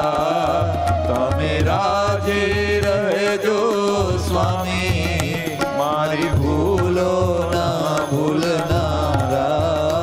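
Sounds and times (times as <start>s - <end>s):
devotional chanting: 0.0s - 10.0s
instrumental accompaniment: 0.0s - 10.0s.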